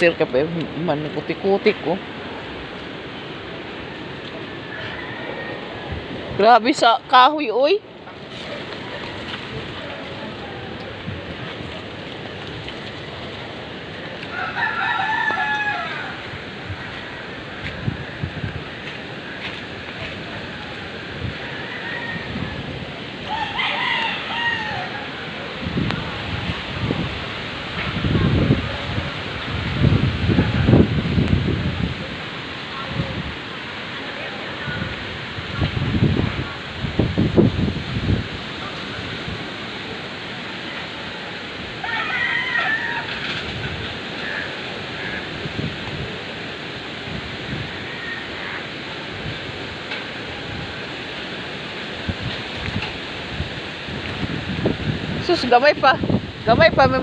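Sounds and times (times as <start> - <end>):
wind buffeting microphone: 0.0 - 40.2, 40.9 - 57.0
steady wind: 0.0 - 57.0
rooster crowing: 4.4 - 6.1, 14.2 - 16.5, 21.1 - 25.6, 41.8 - 45.4, 47.6 - 49.0.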